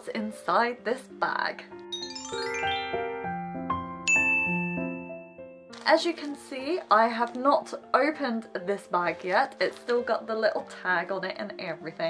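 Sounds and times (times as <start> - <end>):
woman speaking: 0.0 - 1.7, 5.8 - 12.0
bright chime ding: 1.9 - 3.2, 4.0 - 5.1
soft jingle notes: 1.9 - 5.4.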